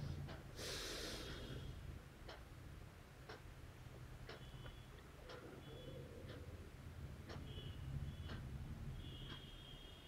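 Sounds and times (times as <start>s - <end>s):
clock ticking: 0.0s - 10.0s
low steady hum: 0.0s - 10.0s.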